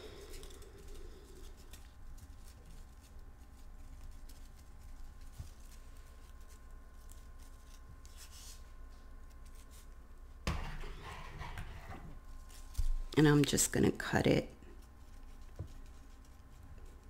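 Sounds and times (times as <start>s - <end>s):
ribbon and scissors rustling: 0.0s - 10.1s, 12.2s - 17.0s
steady high hum: 0.0s - 17.0s.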